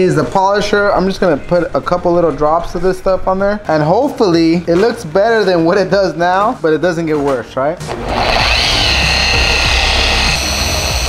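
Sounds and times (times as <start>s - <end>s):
electric car polisher whining: 7.9s - 11.0s.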